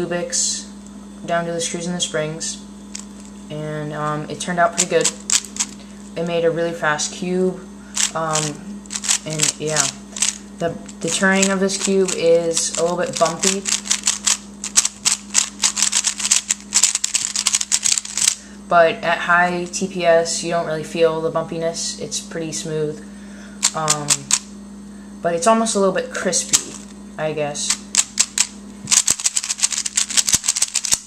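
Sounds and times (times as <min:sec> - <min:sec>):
puzzle cube plastic clicks: 0:04.8 - 0:05.8, 0:08.0 - 0:10.4, 0:11.0 - 0:18.4, 0:23.6 - 0:24.4, 0:26.5 - 0:26.9, 0:27.7 - 0:31.0.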